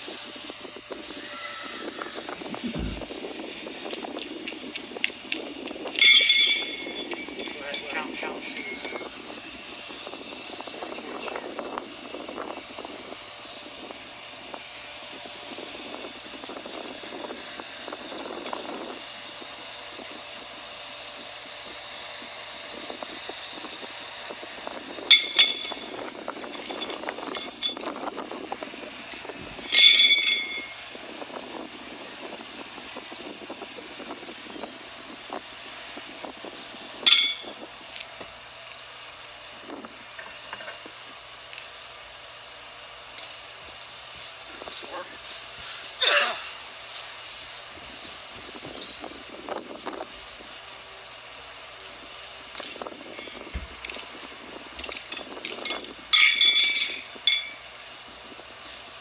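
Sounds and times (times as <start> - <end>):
horseshoes clanking on steel stake: 29.6 - 30.7, 54.8 - 57.6.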